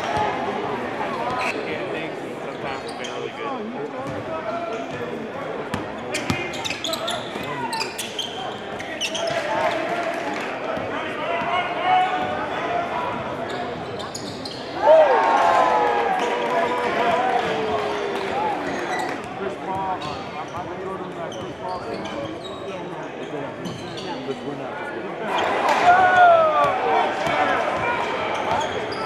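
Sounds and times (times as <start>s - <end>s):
crowd chatter: 0.0s - 29.0s.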